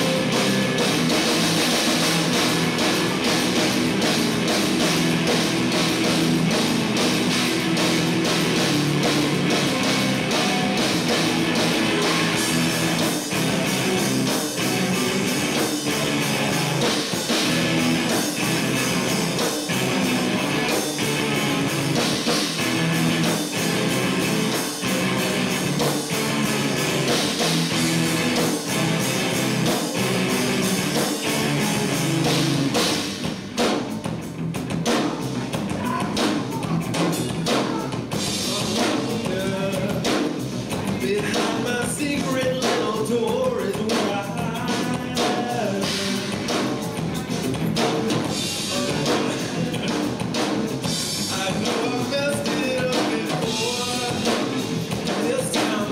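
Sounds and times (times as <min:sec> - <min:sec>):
live rock band playing: 0:00.0 - 0:55.9.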